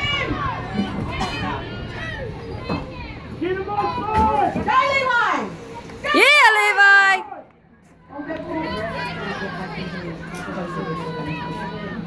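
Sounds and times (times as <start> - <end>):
people shouting: 0.0 - 7.5, 8.1 - 12.0.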